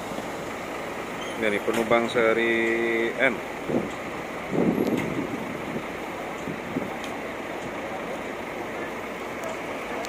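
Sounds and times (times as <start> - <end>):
buses idling: 0.0 - 10.0.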